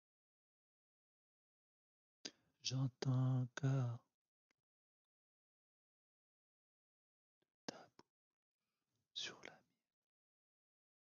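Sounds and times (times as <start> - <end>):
person whispering: 2.6 - 4.0, 7.7 - 8.0, 9.2 - 9.6.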